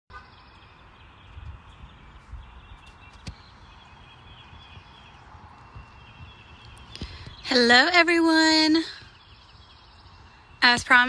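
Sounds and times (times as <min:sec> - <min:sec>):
birds chirping in trills: 0:00.1 - 0:11.0.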